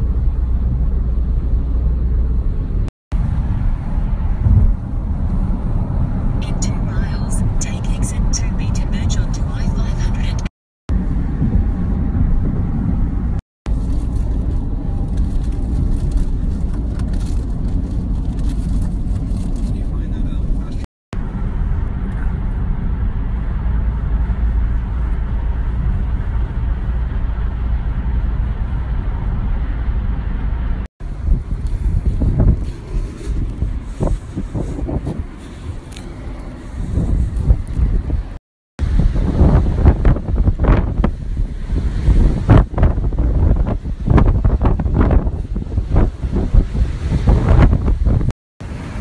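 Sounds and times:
car road and engine rumble: 0.0s - 49.0s.

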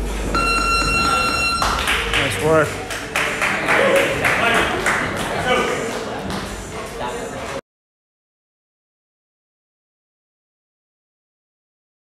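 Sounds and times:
high electronic timer beep: 0.3s - 1.9s.

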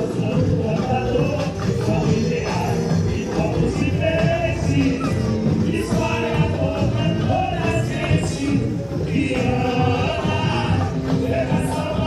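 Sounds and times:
carnival parade music: 0.0s - 12.0s
group of voices singing: 0.0s - 12.0s.

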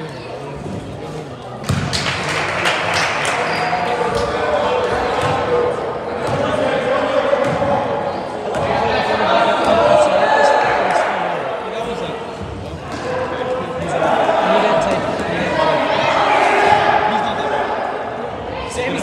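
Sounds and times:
players and spectators calling out: 2.5s - 19.0s.

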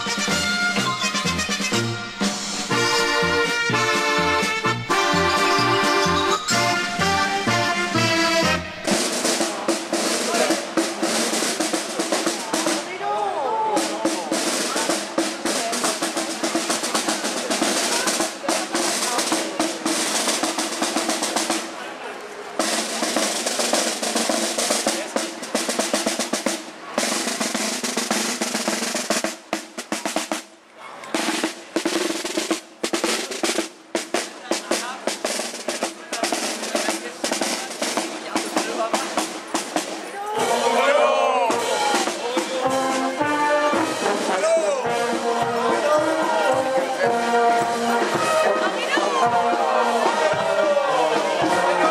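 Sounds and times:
snare drum strokes and rolls: 0.0s - 51.9s.

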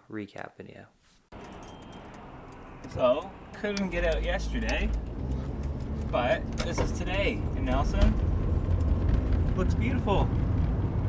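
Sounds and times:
car road and engine noise: 1.3s - 11.0s.

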